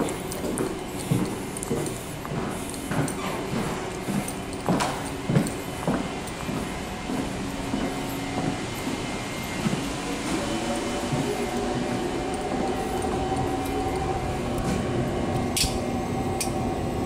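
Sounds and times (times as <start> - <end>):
machinery hum: 0.0 - 17.0.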